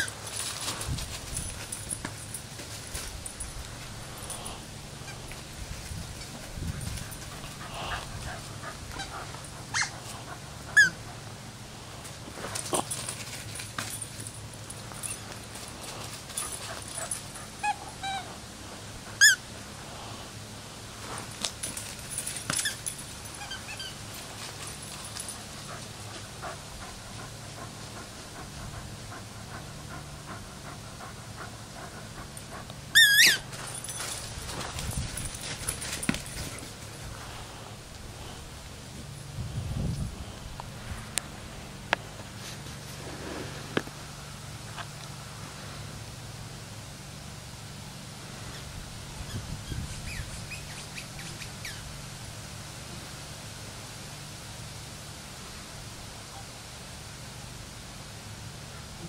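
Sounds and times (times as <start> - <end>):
paws scuffling through dry leaves: 0.0 - 11.0, 33.0 - 38.5
dog panting: 6.1 - 19.3, 23.3 - 37.5
dog crying: 7.7 - 10.0, 17.6 - 18.4.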